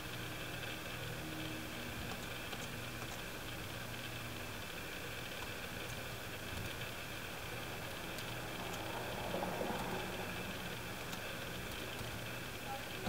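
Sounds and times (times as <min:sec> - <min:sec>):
low room hum and hiss: 0:00.0 - 0:13.0.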